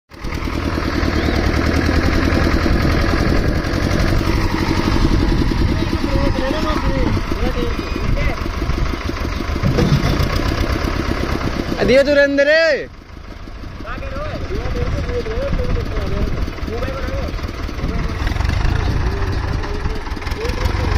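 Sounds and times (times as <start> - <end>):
tractor diesel engine under load: 0.1 - 20.9.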